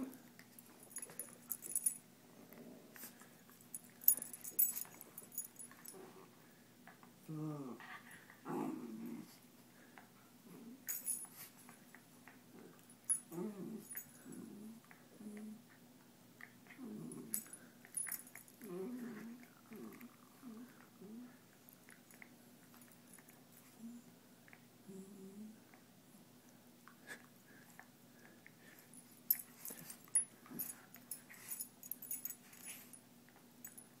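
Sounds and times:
dogs play-fighting noises: 0.0s - 2.0s, 2.8s - 6.3s, 27.7s - 33.8s
dogs growling: 7.3s - 9.4s, 13.3s - 15.6s, 16.7s - 17.5s, 18.6s - 21.4s.

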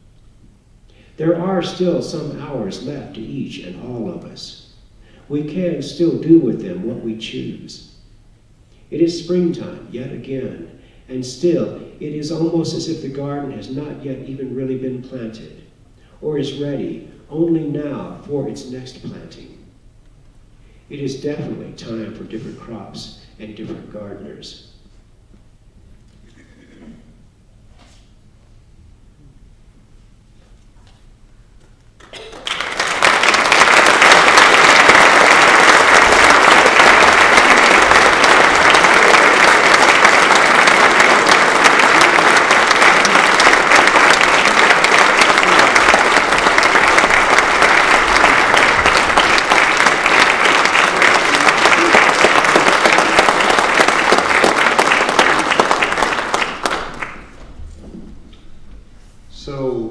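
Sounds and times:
audience applauding: 32.0s - 57.5s.

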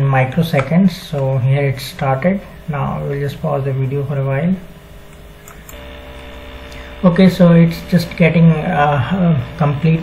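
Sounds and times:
low electrical hum: 0.0s - 10.0s
humming tones: 2.4s - 10.0s.

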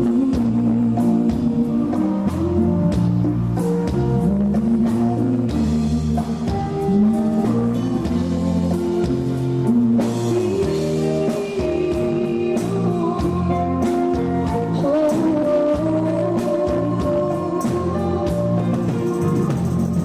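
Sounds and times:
woman singing: 0.0s - 19.3s
keyboards: 0.0s - 20.0s
live band playing: 0.0s - 20.0s
steady drum beat: 0.0s - 20.0s.

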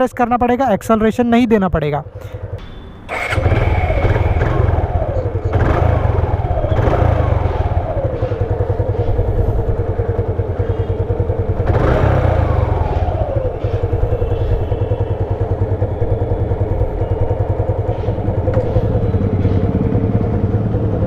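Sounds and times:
motorcycle engine idling and revving: 0.2s - 21.0s.

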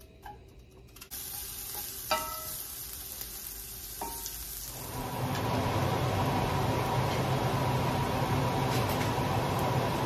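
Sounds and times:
onion sizzling in a skillet: 1.1s - 10.0s.

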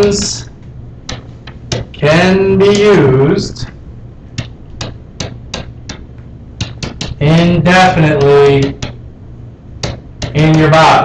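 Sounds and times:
stylus tapping on writing surface: 1.1s - 2.0s, 4.4s - 7.2s, 8.2s - 9.0s, 9.8s - 10.4s.

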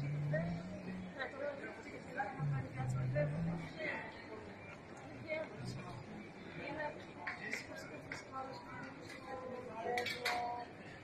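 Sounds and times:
passers-by talking: 0.0s - 11.0s.

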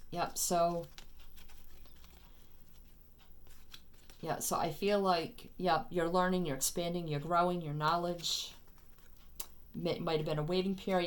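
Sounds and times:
cards rustling and clicking: 0.4s - 4.2s, 8.1s - 9.6s.

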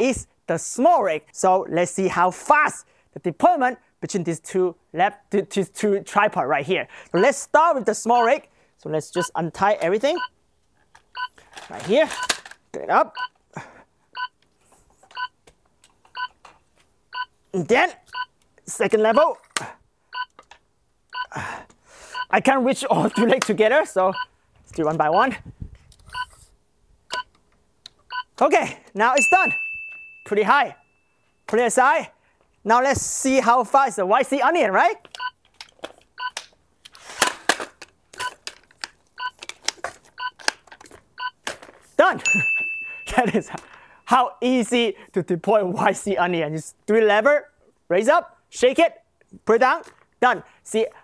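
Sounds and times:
electronic beeps: 9.2s - 9.4s, 23.1s - 23.3s
electronic timer beeps: 9.2s - 9.4s, 11.1s - 11.3s, 14.2s - 14.4s, 16.1s - 16.3s, 17.1s - 17.3s, 18.1s - 18.3s, 20.1s - 20.3s, 22.1s - 22.3s, 23.1s - 23.3s, 28.1s - 28.3s, 40.2s - 40.4s.

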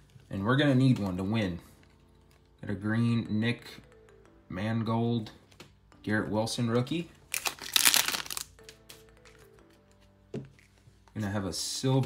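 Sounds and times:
foil wrapper crinkling and tearing: 7.3s - 9.4s.

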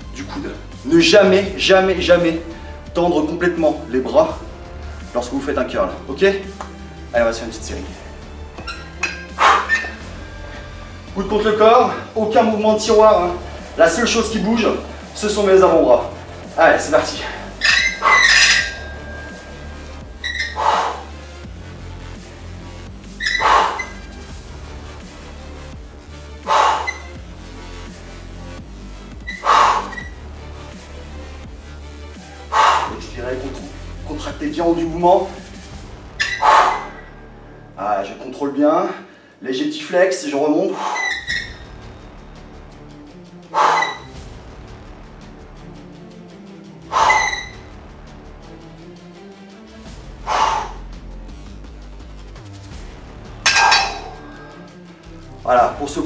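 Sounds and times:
background music: 0.0s - 56.0s
forceful exhalations: 8.8s - 10.8s, 16.4s - 21.4s, 23.2s - 24.2s, 26.4s - 27.2s, 29.2s - 30.2s, 32.2s - 33.0s, 36.2s - 37.6s, 40.7s - 41.6s, 43.5s - 44.1s, 46.9s - 47.6s, 50.2s - 50.8s.

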